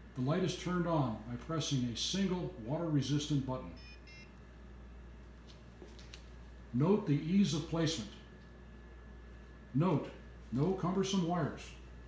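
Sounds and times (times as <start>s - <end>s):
faint steady hum: 0.0s - 12.0s
short electronic beep: 3.8s - 4.3s.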